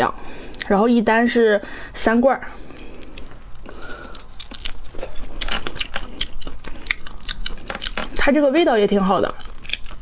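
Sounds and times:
crayfish shell cracking: 2.6s - 8.3s, 9.1s - 10.0s.

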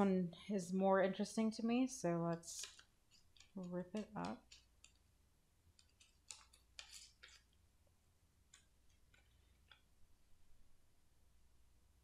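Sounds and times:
paper rustling: 2.4s - 4.9s, 5.8s - 7.6s.

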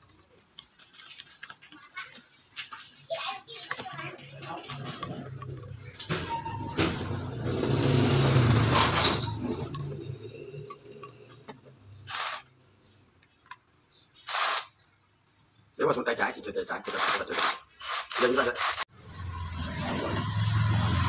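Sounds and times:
short bursts of noise: 10.2s - 12.5s, 14.2s - 14.8s, 16.8s - 18.8s
cordless drill humming: 12.1s - 12.4s, 14.3s - 14.7s.

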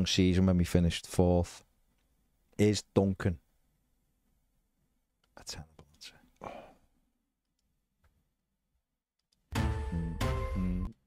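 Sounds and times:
man whispering: 5.3s - 6.7s.

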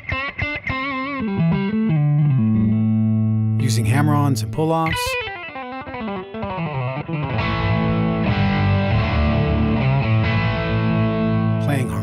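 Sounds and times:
electric guitar playing: 0.0s - 12.0s.

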